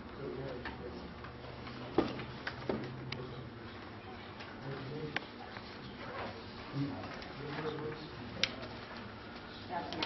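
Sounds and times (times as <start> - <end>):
faint low murmuring: 0.0 - 10.0
steady low hum: 0.0 - 10.0.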